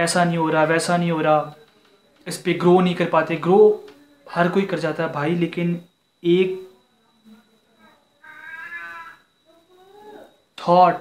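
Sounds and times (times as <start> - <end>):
faint drawn-out pitched call: 7.7 - 10.5.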